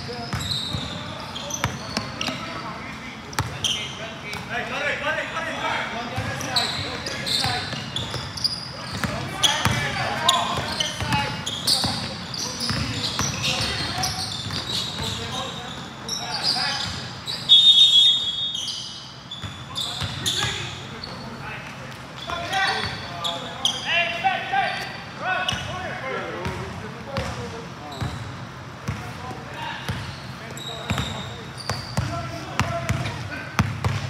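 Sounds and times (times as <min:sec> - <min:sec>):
players calling out: 0:00.1 - 0:28.2
basketball bouncing: 0:08.9 - 0:15.2, 0:30.9 - 0:34.0
referee's whistle blast: 0:17.5 - 0:18.9.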